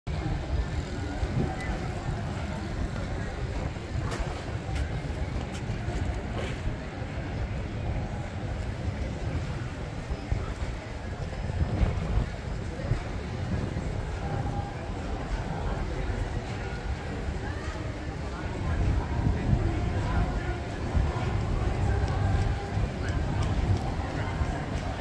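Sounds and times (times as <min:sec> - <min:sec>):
people talking nearby: 0:00.1 - 0:25.0
wind rumbling on microphone: 0:00.1 - 0:25.0.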